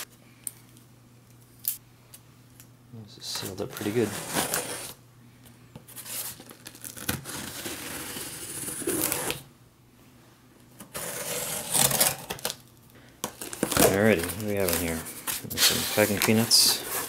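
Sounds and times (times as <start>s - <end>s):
tape tearing: 3.5s - 5.0s, 6.0s - 9.4s, 10.8s - 17.0s
knife slitting packing tape: 6.4s - 9.4s, 10.9s - 12.6s.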